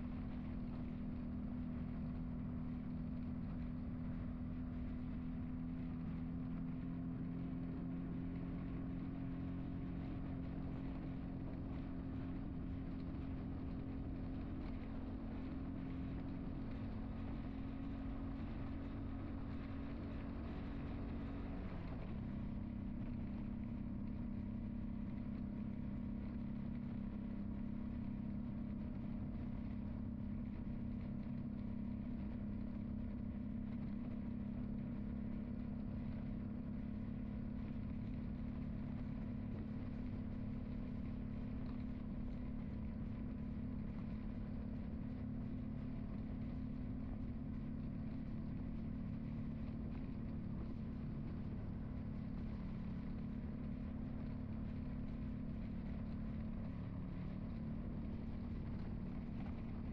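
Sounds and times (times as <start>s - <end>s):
car engine drone: 0.0s - 59.9s.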